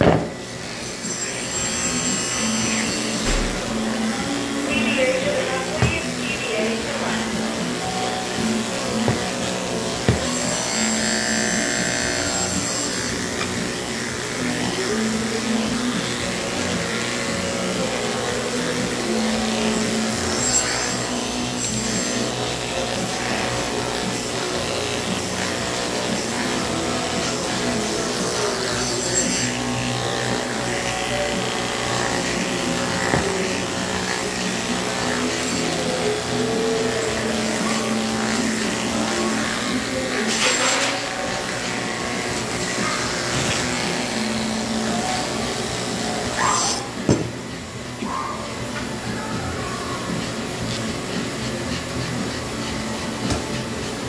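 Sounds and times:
background music: 0.0 - 54.0
pet clippers buzzing: 0.0 - 54.0.

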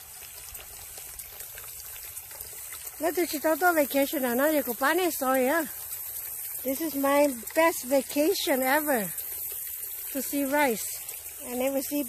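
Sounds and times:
shallow water trickling: 0.0 - 12.0.

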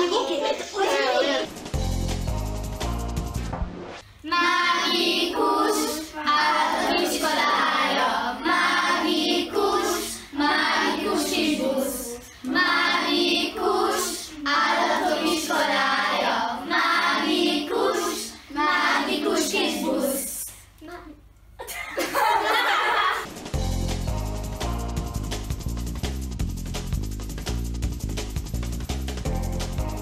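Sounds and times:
children singing together: 4.3 - 20.5.

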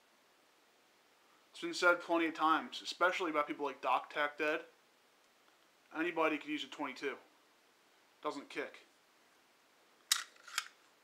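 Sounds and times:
pistol action metallic clicks: 10.1 - 10.8.

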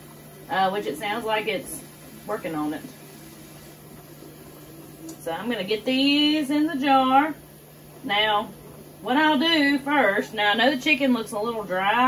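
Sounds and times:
pressure canner hissing: 0.0 - 10.2.

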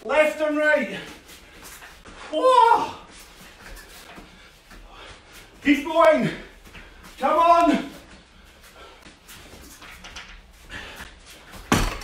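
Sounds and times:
fabric rustling and shuffling feet: 0.2 - 11.7.

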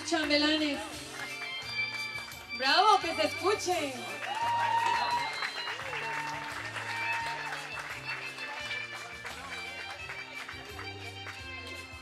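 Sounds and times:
background music with bass notes: 0.0 - 12.0
people clapping: 0.0 - 12.0.

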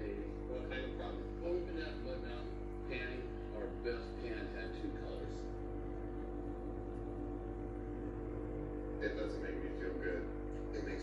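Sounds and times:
steady low hum: 0.0 - 11.0
faint indistinct voices: 9.0 - 11.0.

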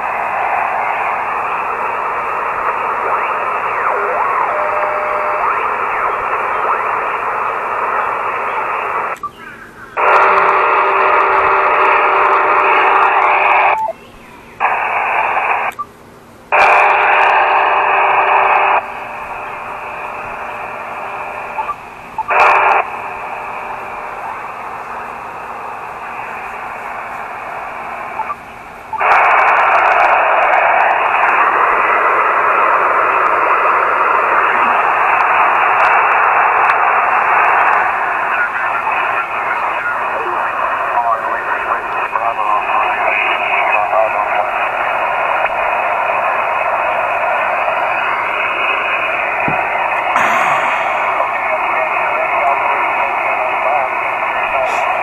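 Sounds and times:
faint steady radio tones: 0.0 - 55.0
radio static hiss: 0.0 - 55.0.

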